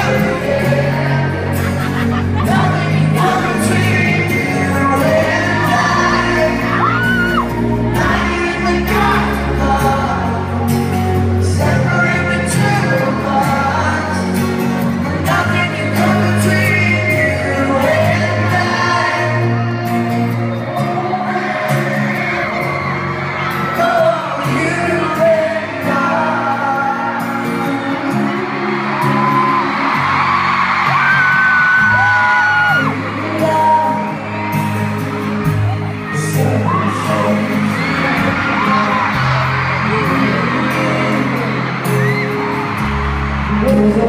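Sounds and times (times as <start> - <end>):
crowd screaming and whooping: 0.0 - 44.0
live pop ballad band: 0.0 - 44.0.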